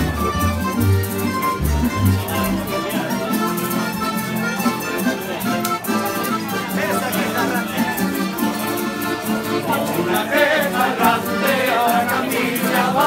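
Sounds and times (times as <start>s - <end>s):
guitars strummed: 0.0s - 13.0s
men singing: 9.6s - 13.0s.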